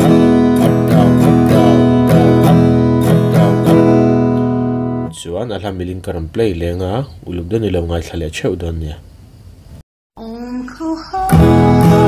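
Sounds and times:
acoustic guitar strumming: 0.0 - 5.2, 11.3 - 12.0.

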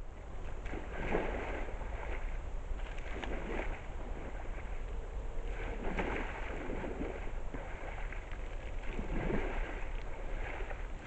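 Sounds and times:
low rumble: 0.0 - 11.0
mud splashing and sloshing: 0.0 - 11.0.

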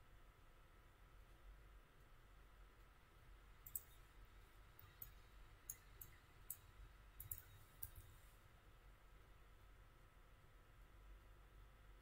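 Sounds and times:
computer mouse clicks: 3.6 - 4.1, 4.8 - 8.2.

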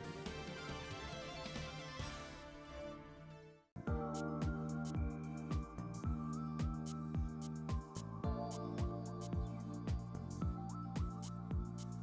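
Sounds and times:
background music with light beat: 0.0 - 2.5, 3.8 - 12.0.

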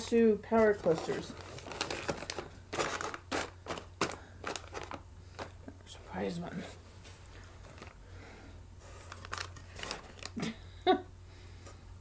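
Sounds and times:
snack pouches crinkling: 0.7 - 5.7, 7.4 - 8.0, 9.0 - 10.6.

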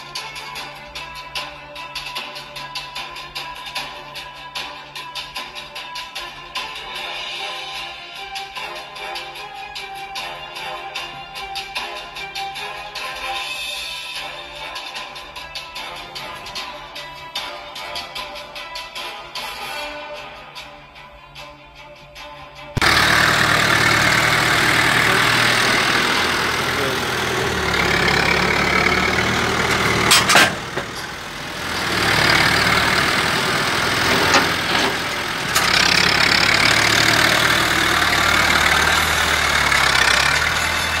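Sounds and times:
tractor engine running loudly: 22.8 - 41.0
sharp metal clank: 30.0 - 31.1.

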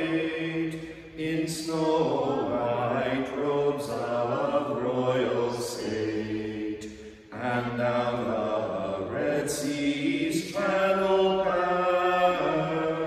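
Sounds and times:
men chanting psalms: 0.0 - 13.0.

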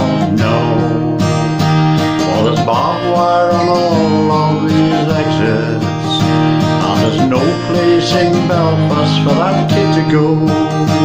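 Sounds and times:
person singing: 0.0 - 1.4, 2.1 - 11.0
acoustic guitar strummed: 0.0 - 11.0.

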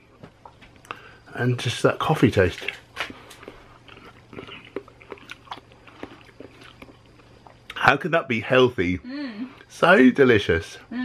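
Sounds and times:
man chewing food: 0.0 - 1.2, 2.5 - 7.8.

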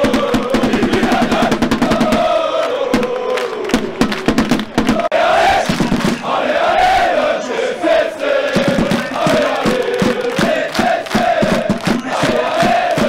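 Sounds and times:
sharp drum beats: 0.0 - 6.4, 8.4 - 13.0
crowd singing a chant: 0.0 - 13.0.

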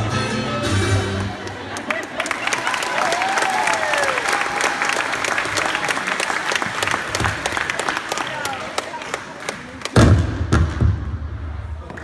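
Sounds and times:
audience clapping: 1.1 - 10.0.

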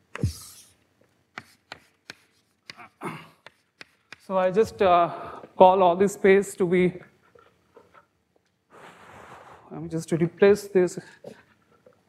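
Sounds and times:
chalk tapping and scraping on blackboard: 1.3 - 4.8.

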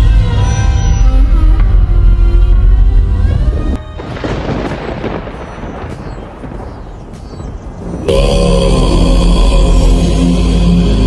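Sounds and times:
music: 0.0 - 11.0
thunder-like rumble of noise: 3.4 - 10.1.

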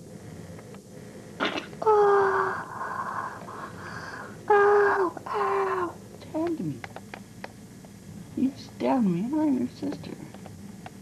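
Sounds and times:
young person wailing: 1.8 - 2.6, 4.5 - 6.0.

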